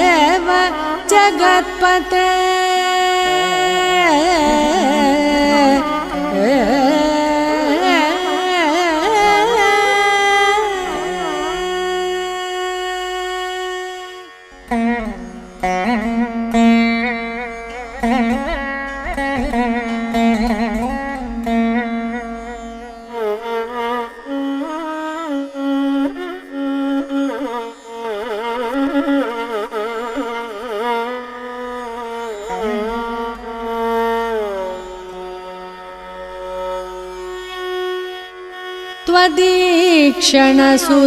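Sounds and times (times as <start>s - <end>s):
classical indian melody: 0.0s - 41.0s
woman singing a long note: 2.0s - 8.2s, 39.1s - 41.0s.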